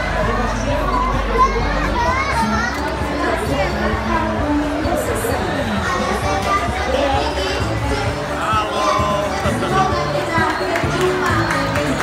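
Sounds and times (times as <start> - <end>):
children chattering and calling out: 0.0 - 12.0
music playing: 0.0 - 12.0.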